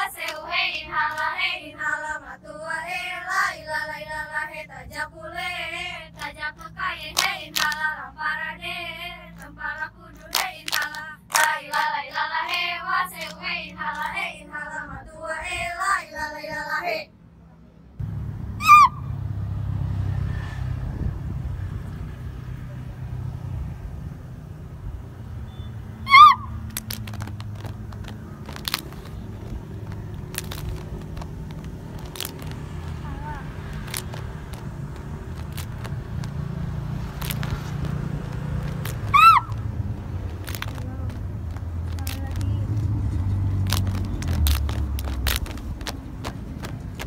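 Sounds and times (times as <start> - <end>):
sharp claps or slaps: 6.2 - 7.8, 10.1 - 14.2, 26.6 - 36.4, 37.0 - 39.7
high-pitched cries: 18.6 - 19.1, 26.0 - 27.0, 39.0 - 39.7.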